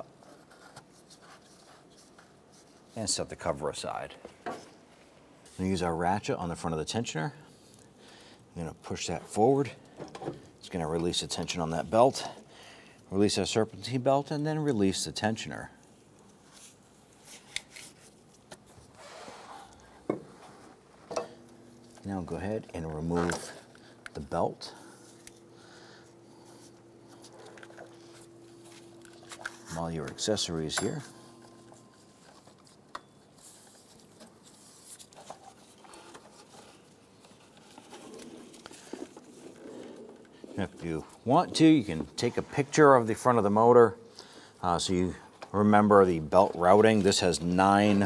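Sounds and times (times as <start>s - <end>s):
rubber belt rustling and scraping: 0.0s - 5.8s, 15.8s - 43.4s
soft rubbing on a belt: 0.1s - 3.6s, 15.8s - 21.0s.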